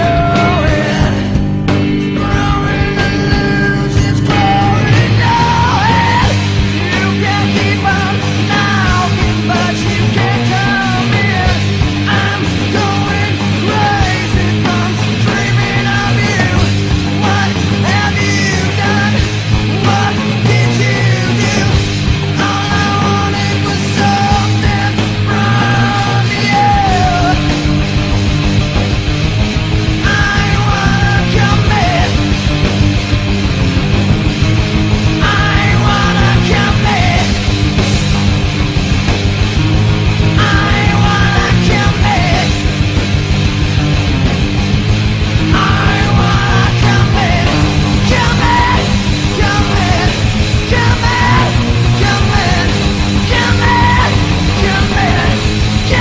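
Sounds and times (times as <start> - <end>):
loud rock band: 0.0 - 56.0.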